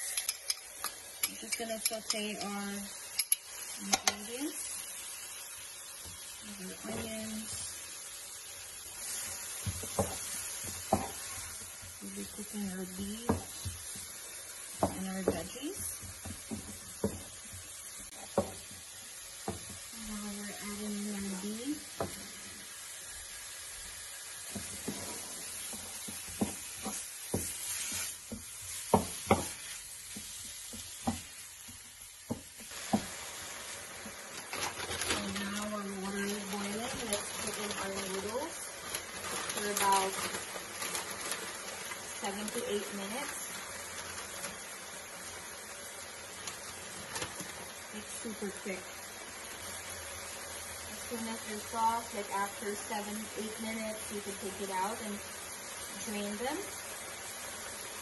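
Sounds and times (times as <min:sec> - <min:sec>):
food sizzling in a frying pan: 0:00.0 - 0:58.0
wooden spatula scraping a pan: 0:08.8 - 0:22.6, 0:24.4 - 0:31.4, 0:32.3 - 0:45.4.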